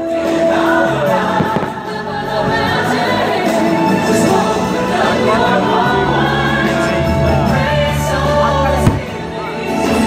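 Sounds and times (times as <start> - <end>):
choral music: 0.0 - 10.0
firework bangs: 1.2 - 2.6, 8.8 - 9.3.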